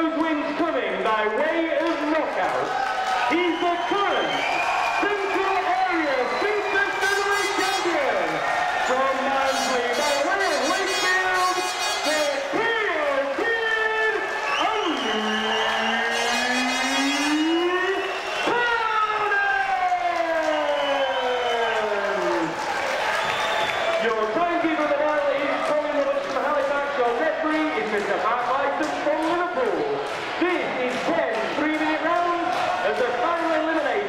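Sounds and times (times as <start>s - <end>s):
announcer calling over loudspeaker: 0.0s - 2.7s, 3.3s - 4.4s, 5.0s - 22.5s, 24.0s - 34.0s
crowd noise: 0.0s - 34.0s.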